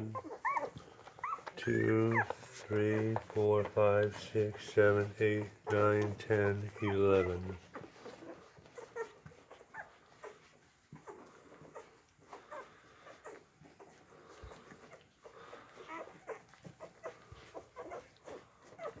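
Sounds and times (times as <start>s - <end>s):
puppies squeaking and whimpering: 0.0s - 19.0s.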